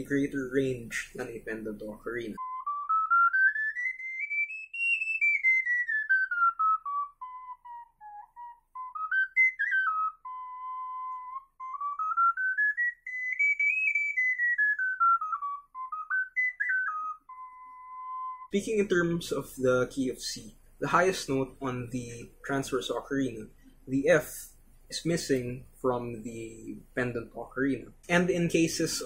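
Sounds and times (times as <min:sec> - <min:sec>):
pendant ocarina playing scale: 0:02.4 - 0:18.6
transverse ocarina playing scale: 0:02.4 - 0:18.6.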